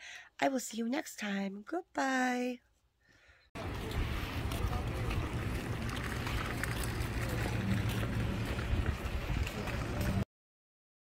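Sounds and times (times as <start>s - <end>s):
outdoor ambience: 2.6s - 10.3s
wind buffeting microphone: 3.6s - 10.2s.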